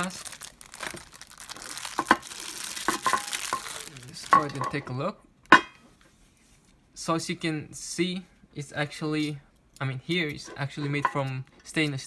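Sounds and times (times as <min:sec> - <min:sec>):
plastic wrapping crinkling: 0:00.0 - 0:04.8.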